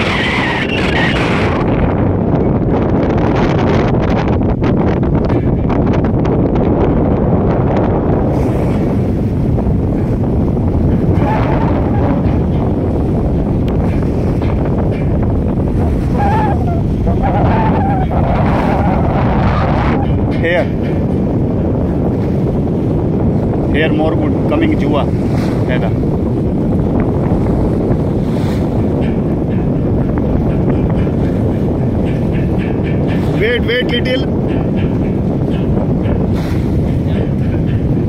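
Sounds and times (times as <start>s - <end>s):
sea water rushing along ship: 0.0s - 38.0s
wind buffeting microphone: 0.0s - 38.0s.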